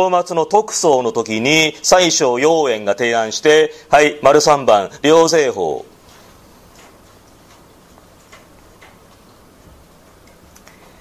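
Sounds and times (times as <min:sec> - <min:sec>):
faint light clicks and taps: 0:06.7 - 0:09.3.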